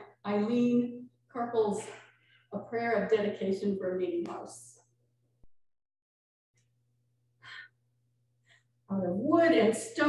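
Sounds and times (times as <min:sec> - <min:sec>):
woman speaking: 0:00.0 - 0:04.8, 0:08.9 - 0:10.0
woman breathing in: 0:07.4 - 0:07.8.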